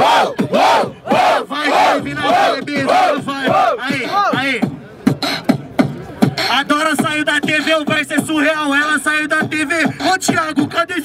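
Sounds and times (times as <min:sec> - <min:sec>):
beatboxing into microphone: 0:02.0 - 0:11.0.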